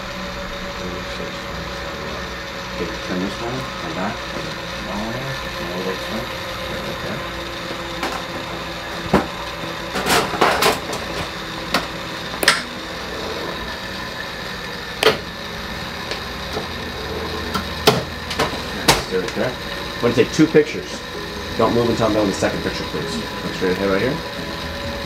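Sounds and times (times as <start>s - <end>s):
steady electrical hum: 0.0s - 25.0s.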